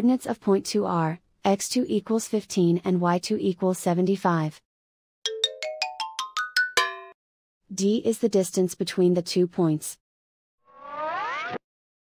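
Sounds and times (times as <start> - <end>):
synthesized rising chime: 10.7 - 11.6.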